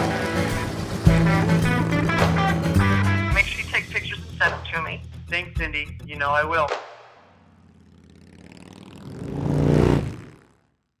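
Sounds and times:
motorcycle engine: 0:00.0 - 0:03.4, 0:07.1 - 0:11.0.

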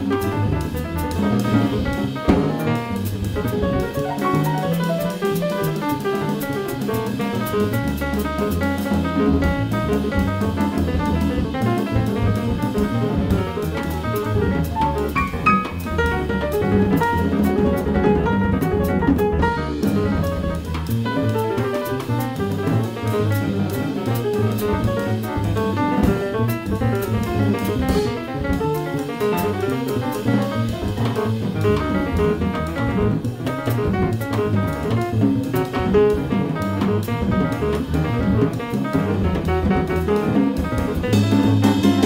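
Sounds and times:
double bass: 0:00.0 - 0:42.0
drums and cymbals: 0:00.0 - 0:42.0
piano: 0:00.0 - 0:42.0.

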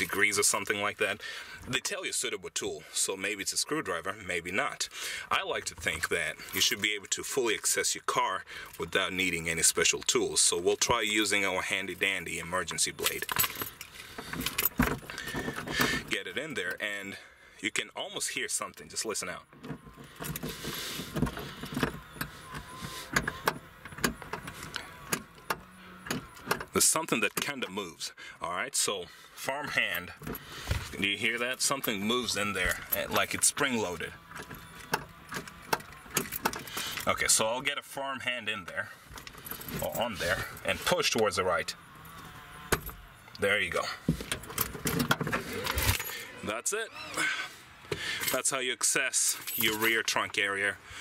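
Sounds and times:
keys jingling: 0:13.0 - 0:15.3
key clicking and scraping in slot: 0:19.5 - 0:26.8, 0:34.2 - 0:37.1.

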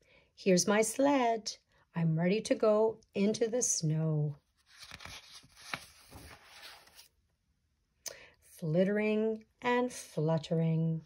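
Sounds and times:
book page turning: 0:04.5 - 0:07.2.

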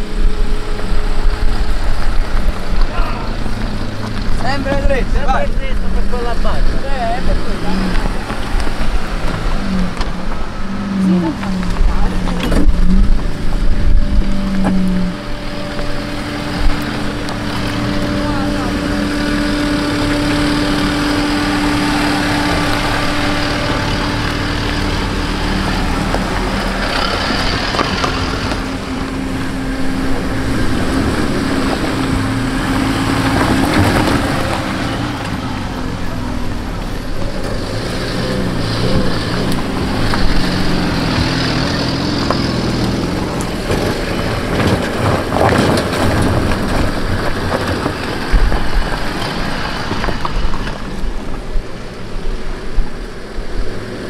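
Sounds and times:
car engines running slowly: 0:00.0 - 0:54.0
voices: 0:02.8 - 0:45.4.

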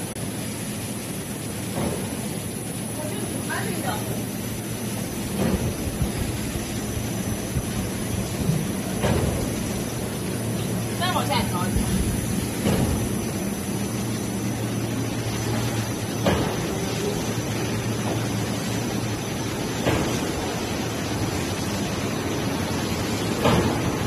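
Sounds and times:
machinery humming and whirring: 0:00.0 - 0:24.0.

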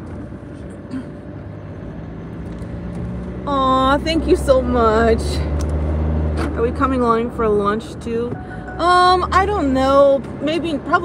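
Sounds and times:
car interior road hum: 0:00.0 - 0:11.0.

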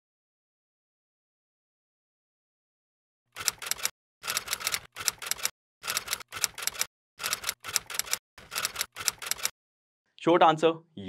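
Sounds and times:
rapid typing key clicks: 0:03.4 - 0:09.5.

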